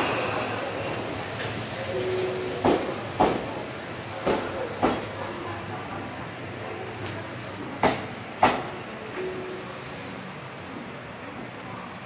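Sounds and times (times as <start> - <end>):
train running hiss: 0.0 - 11.7
train wheels clacking over rail joint: 1.4 - 3.6, 4.2 - 5.1, 7.8 - 8.7.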